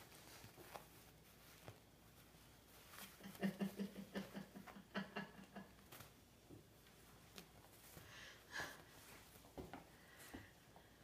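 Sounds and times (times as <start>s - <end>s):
person's stifled laughter: 3.1s - 5.9s.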